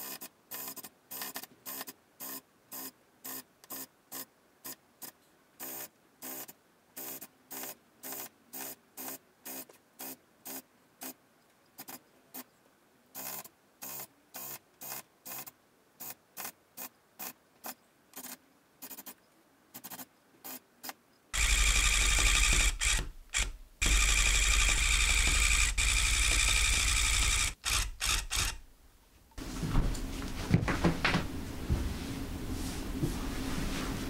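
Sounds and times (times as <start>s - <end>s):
electric tufting gun running: 21.4s - 28.6s.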